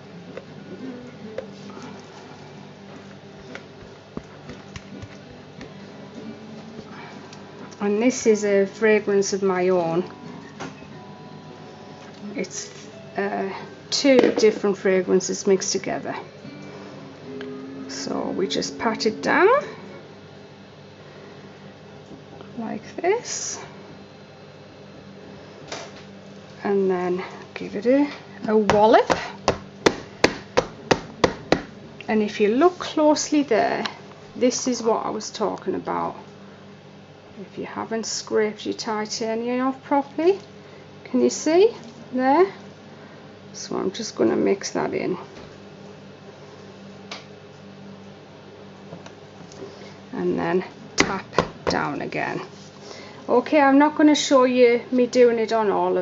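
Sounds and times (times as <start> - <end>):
faint steady hum: 0.0 - 56.0.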